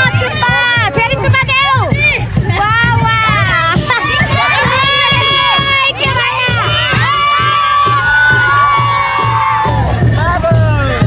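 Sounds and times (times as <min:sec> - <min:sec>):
children shouting and cheering: 0:00.0 - 0:10.8
steady low beat: 0:00.0 - 0:11.0.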